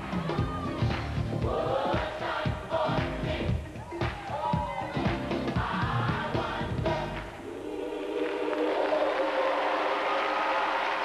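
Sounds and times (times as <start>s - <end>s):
gospel choir singing with band: 0.0s - 11.0s.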